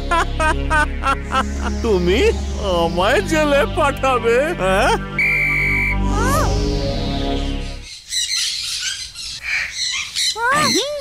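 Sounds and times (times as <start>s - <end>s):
parrots squawking and chirping: 7.8s - 11.0s.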